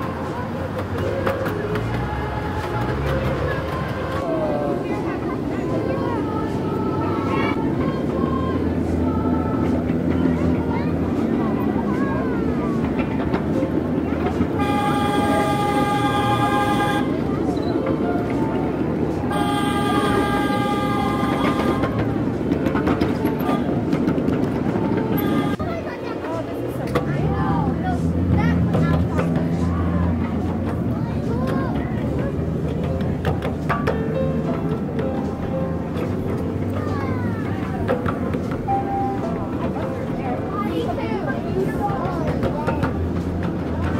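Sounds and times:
indistinct voices: 0:00.0 - 0:43.9
train rumbling: 0:00.0 - 0:43.9
train horn blast: 0:14.4 - 0:17.4, 0:19.3 - 0:24.0, 0:24.9 - 0:25.7.

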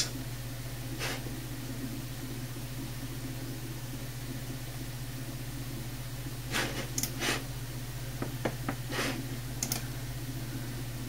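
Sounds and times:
desktop computer humming: 0:00.0 - 0:11.0.

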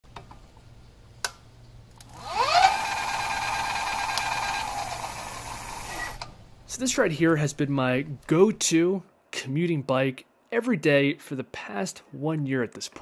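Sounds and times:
electric bike motor whining: 0:02.1 - 0:06.3.

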